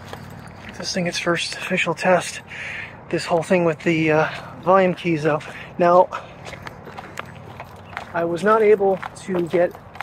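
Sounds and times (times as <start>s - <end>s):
footsteps walking: 0.0s - 2.4s, 3.1s - 10.0s
low outdoor background: 0.0s - 10.0s.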